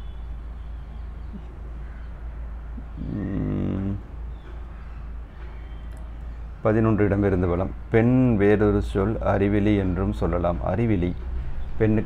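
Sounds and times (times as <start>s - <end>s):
faint low background hum: 0.0s - 12.0s
low voiced hum: 0.0s - 12.0s.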